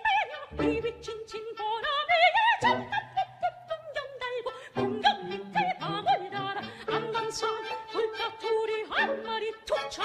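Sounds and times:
bowed strings: 0.0 - 10.0
soprano singing: 0.0 - 10.0.

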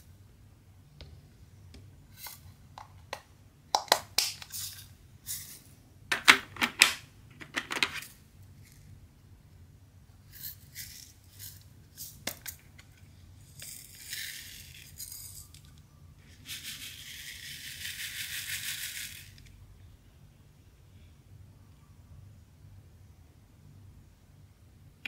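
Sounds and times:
beads clicking and rattling in tray: 13.4 - 15.8, 16.4 - 19.5.

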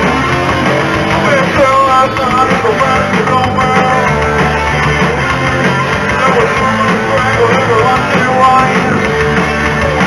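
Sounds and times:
electric guitar: 0.0 - 10.0
rock band playing: 0.0 - 10.0
person singing: 0.5 - 4.7, 6.0 - 10.0.

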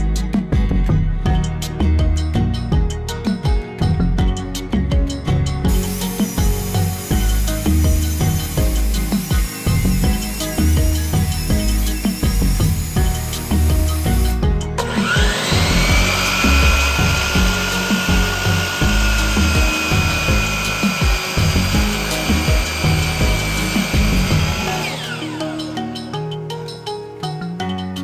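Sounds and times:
background music with steady beat: 0.0 - 28.0
miter saw cutting wood: 5.7 - 26.0.

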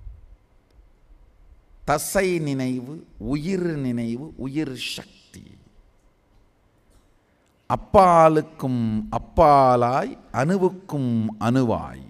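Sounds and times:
man talking: 1.9 - 5.7, 7.7 - 12.0.

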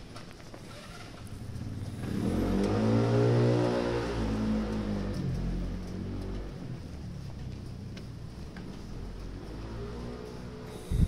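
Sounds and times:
vehicle engine running: 0.4 - 11.0.

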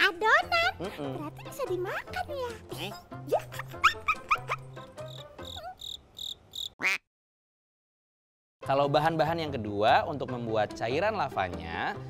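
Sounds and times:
light background music: 0.0 - 5.8, 8.6 - 12.0.

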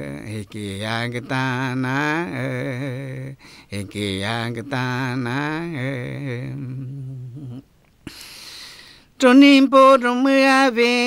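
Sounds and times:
man chanting: 0.0 - 7.6
breath intake hiss: 8.0 - 9.1.

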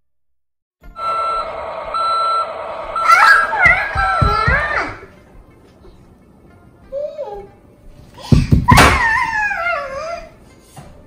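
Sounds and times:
toy truck reversing beeps: 0.9 - 3.6.

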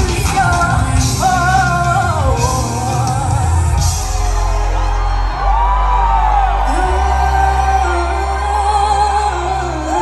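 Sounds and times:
bass notes: 0.0 - 10.0
live pop song over loudspeakers: 0.0 - 10.0.

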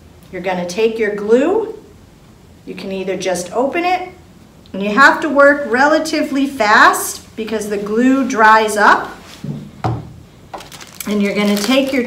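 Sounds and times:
faint handling noises: 10.4 - 12.0.

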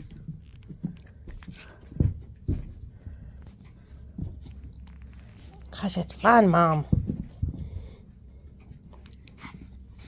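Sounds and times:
dog paws scampering: 0.0 - 10.0
ball bouncing on carpet: 6.8 - 7.8.

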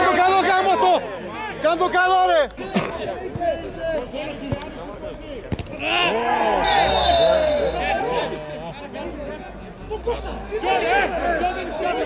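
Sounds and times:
players shouting: 0.0 - 12.0
referee's whistle blast: 6.6 - 7.9.

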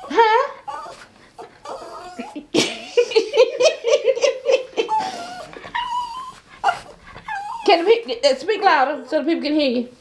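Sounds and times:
small dog whining: 0.0 - 2.5, 4.9 - 8.0.

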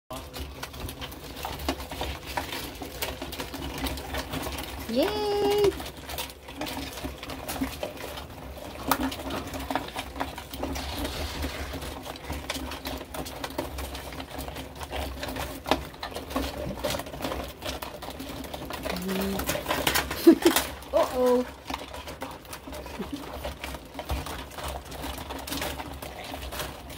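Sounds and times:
crabs clicking and scraping: 0.1 - 26.9.

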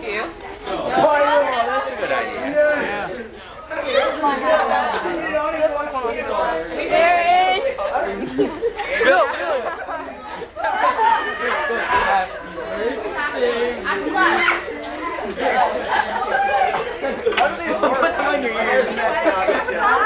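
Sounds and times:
group of people chattering: 0.0 - 20.0.

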